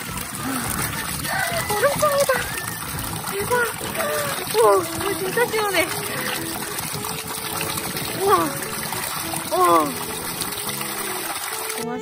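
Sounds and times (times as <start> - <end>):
cloth dunked and squeezed in water: 0.0 - 12.0
water pouring into a basin: 0.0 - 12.0.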